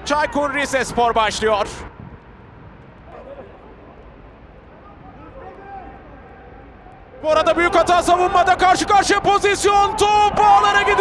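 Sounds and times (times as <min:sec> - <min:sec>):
low stadium hum: 0:00.0 - 0:11.0
distant players shouting: 0:04.9 - 0:11.0.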